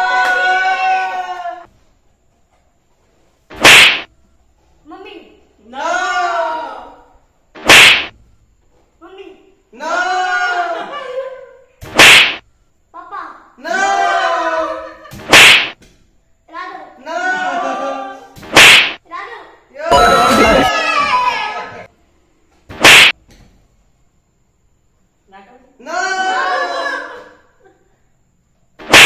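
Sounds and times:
balloon slapped on head: 0:03.5 - 0:04.1, 0:07.6 - 0:08.2, 0:11.8 - 0:12.4, 0:15.1 - 0:15.9, 0:18.4 - 0:19.0, 0:22.7 - 0:23.4, 0:28.8 - 0:29.0
whip-like swooshes: 0:03.5 - 0:04.1, 0:07.6 - 0:08.2, 0:11.8 - 0:12.4, 0:15.2 - 0:15.8, 0:18.4 - 0:19.0, 0:22.7 - 0:23.2, 0:28.8 - 0:29.0.

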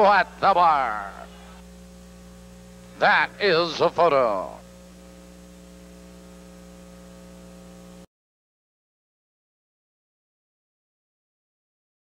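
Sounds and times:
electrical mains hum: 0:00.0 - 0:08.1.

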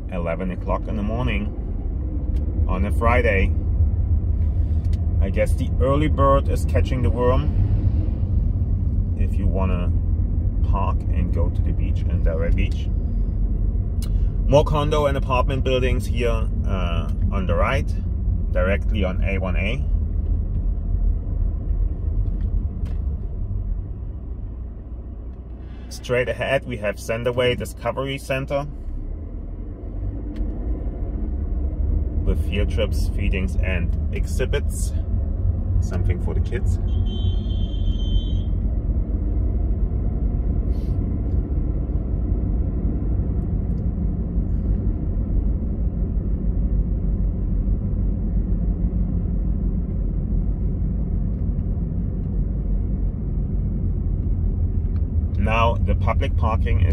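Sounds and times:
road and engine noise in car: 0:00.0 - 0:56.9.

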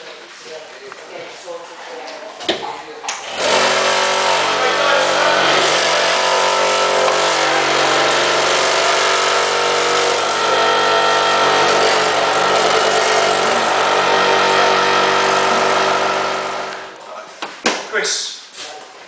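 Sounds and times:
vacuum pump humming: 0:03.2 - 0:17.0.

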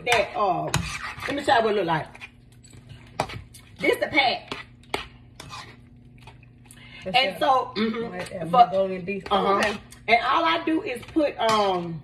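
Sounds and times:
utensil scraping frying pan: 0:00.0 - 0:02.4, 0:03.1 - 0:05.9
low steady hum: 0:00.0 - 0:12.0.

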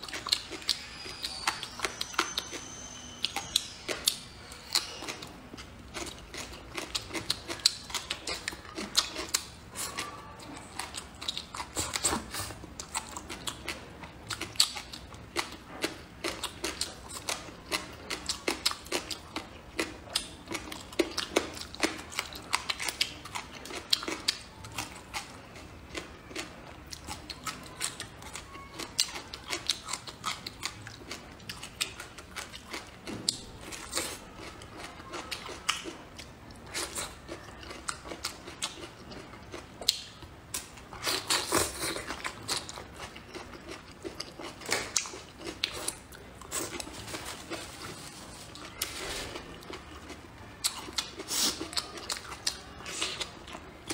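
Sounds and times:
chewing and mouth smacking: 0:00.0 - 0:53.9.

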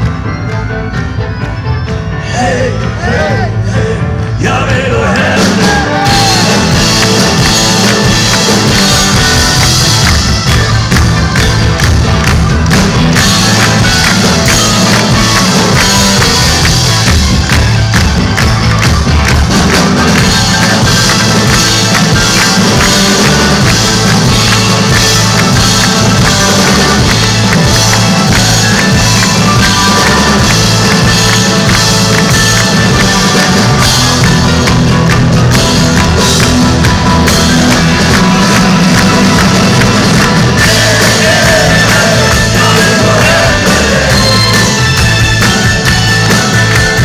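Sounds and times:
live rock band playing: 0:00.0 - 0:47.0.

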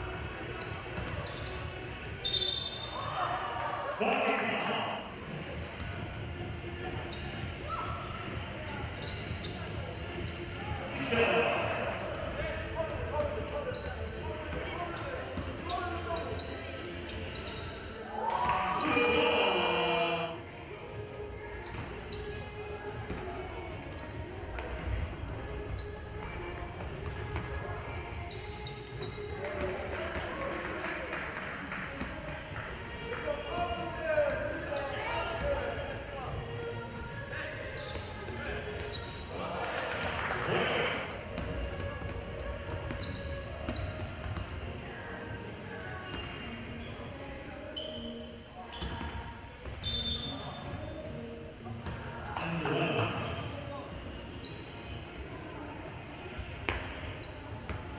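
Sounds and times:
sneakers squeaking: 0:00.0 - 0:39.5, 0:40.4 - 0:57.9
players calling out: 0:18.0 - 0:20.4.

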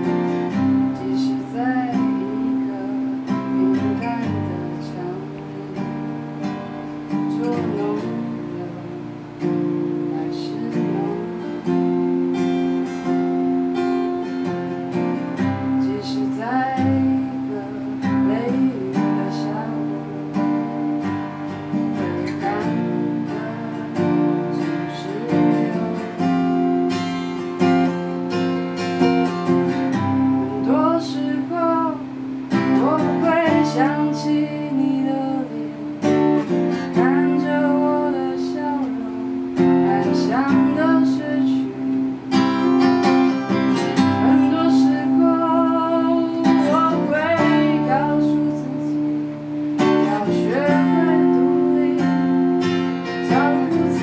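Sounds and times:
acoustic guitar strummed: 0:00.0 - 0:54.0.

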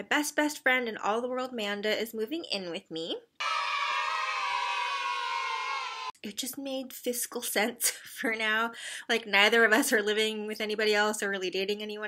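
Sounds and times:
crowd crying out: 0:03.4 - 0:06.2.

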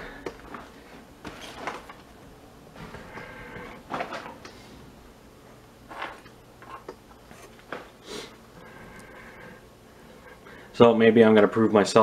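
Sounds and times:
objects clicking and knocking: 0:05.9 - 0:07.9.

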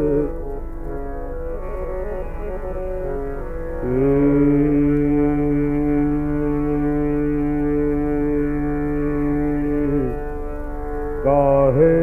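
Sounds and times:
man singing classical vocal: 0:00.0 - 0:00.6, 0:03.0 - 0:12.0
harmonium: 0:00.0 - 0:12.0
tanpura drone: 0:00.0 - 0:12.0.

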